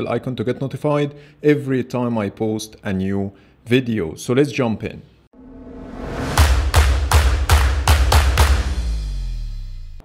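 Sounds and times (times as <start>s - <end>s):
heavy percussive hits with bass: 5.6s - 10.0s.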